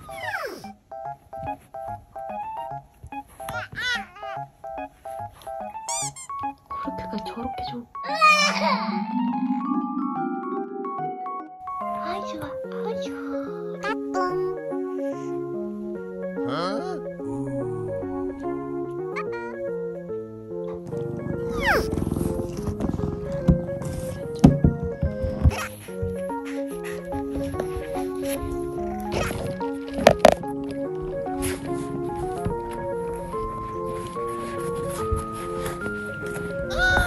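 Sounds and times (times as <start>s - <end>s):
bouncy plucked background music: 0.0s - 37.0s
cat purring: 20.8s - 25.5s.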